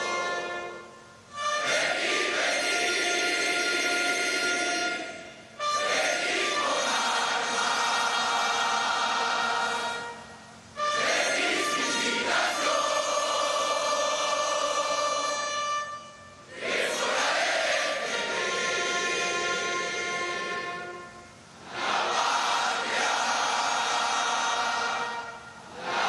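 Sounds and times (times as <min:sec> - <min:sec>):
group singing in unison: 0:01.6 - 0:05.2, 0:05.8 - 0:10.2, 0:10.8 - 0:15.6, 0:16.5 - 0:20.9, 0:21.6 - 0:26.0.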